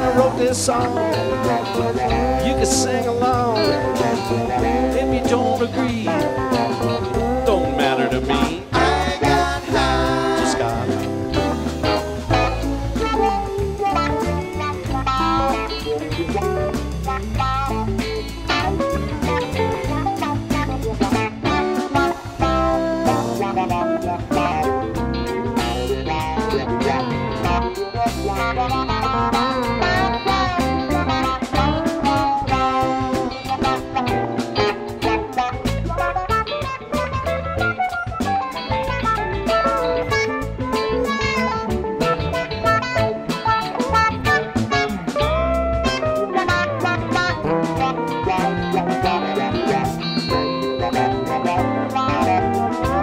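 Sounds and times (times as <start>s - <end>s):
lead guitar bending notes: 0.0s - 53.0s
live band playing rock instrumental: 0.0s - 53.0s.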